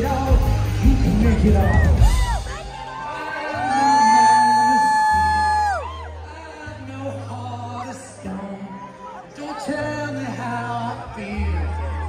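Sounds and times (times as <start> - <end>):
rock band playing live: 0.0 - 6.3
crowd noise: 0.0 - 12.0.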